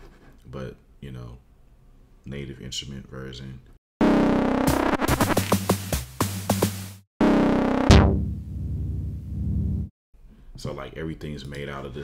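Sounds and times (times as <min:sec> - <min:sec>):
low buzzing synth drone: 0:07.2 - 0:09.9
synth filter sweep: 0:07.2 - 0:09.9
stepping synth bass line: 0:07.4 - 0:09.9
sharp percussive synth hits: 0:07.8 - 0:09.8.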